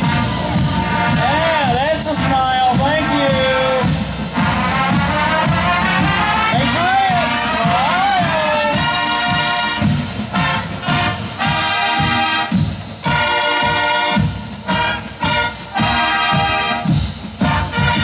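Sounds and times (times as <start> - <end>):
marching band playing: 0.0 - 18.0
punchy brass chords: 0.0 - 18.0
steady drum beat: 0.0 - 18.0.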